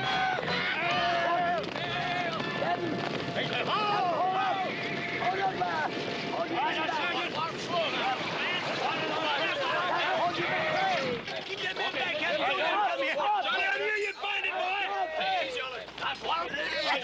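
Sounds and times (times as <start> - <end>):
men shouting and whooping: 0.0 - 5.9, 6.5 - 15.7
horses galloping: 0.0 - 17.0.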